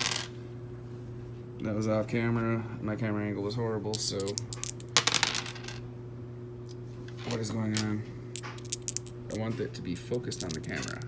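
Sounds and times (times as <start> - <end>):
dice clattering on wooden desk: 0.0 - 0.3, 4.0 - 5.8, 7.2 - 9.5, 10.3 - 11.0.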